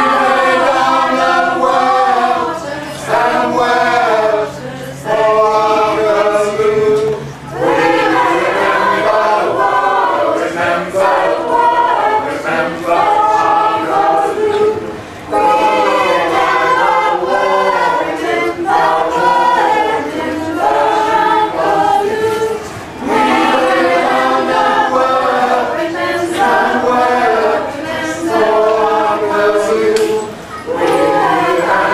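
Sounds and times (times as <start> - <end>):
mixed choir singing in harmony: 0.0 - 31.9.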